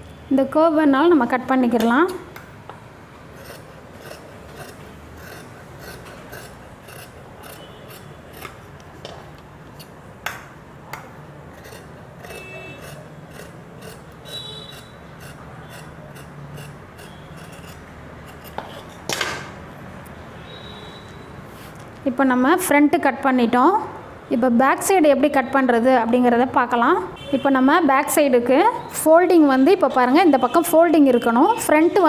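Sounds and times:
scissors snipping fabric: 3.4s - 8.6s, 11.6s - 19.1s.

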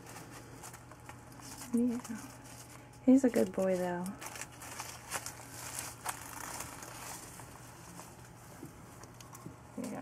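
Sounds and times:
dry leaves crinkling and rustling: 0.0s - 8.5s.

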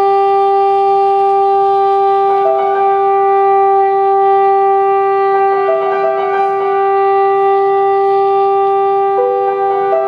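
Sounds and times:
saxophone long steady note: 0.0s - 10.0s.

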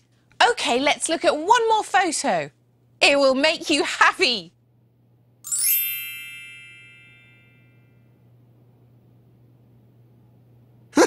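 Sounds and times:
bright chime shimmer: 5.5s - 8.0s.

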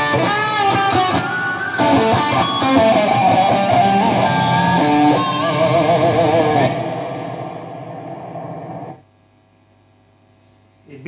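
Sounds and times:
overdriven electric guitar: 0.0s - 9.0s
low amp hum: 0.0s - 11.0s.

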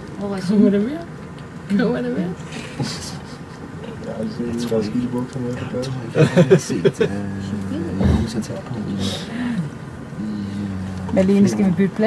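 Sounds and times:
low voices talking: 1.7s - 12.0s.

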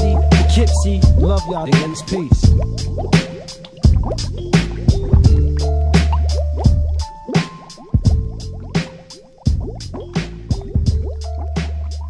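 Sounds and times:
deep bass line: 0.0s - 7.2s, 8.0s - 8.9s, 9.5s - 12.0s
drum beat: 0.0s - 12.0s.

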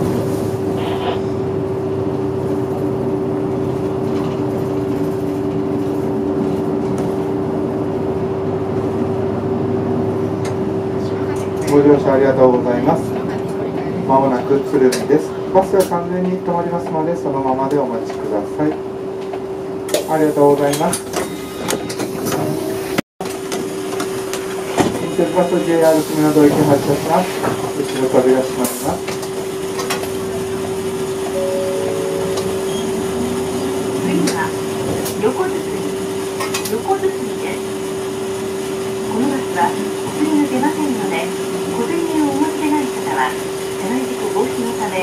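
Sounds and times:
bus interior hum: 0.0s - 45.0s
bus driver's voice: 25.0s - 29.0s.

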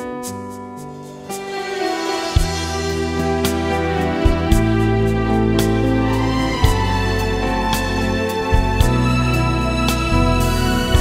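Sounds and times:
sustained keyboard chords: 0.0s - 11.0s.

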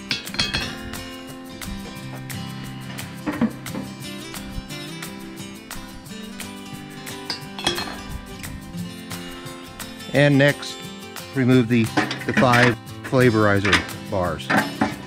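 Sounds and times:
grill grates clanking on concrete: 0.0s - 4.0s, 6.4s - 8.5s, 11.4s - 15.0s
background music: 0.0s - 15.0s.

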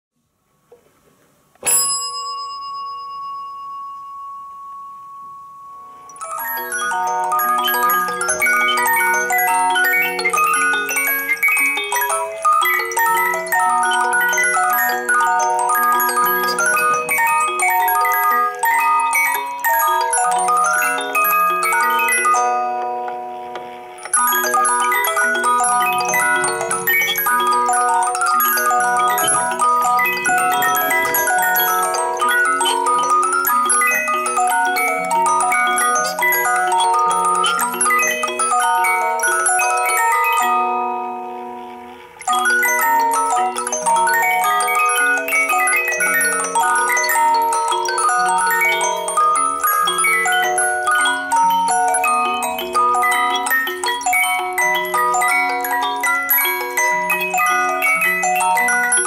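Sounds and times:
music box playing: 1.6s - 59.0s.

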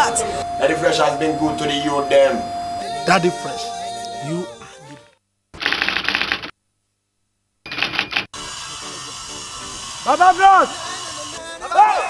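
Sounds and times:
person speaking: 0.0s - 4.6s.

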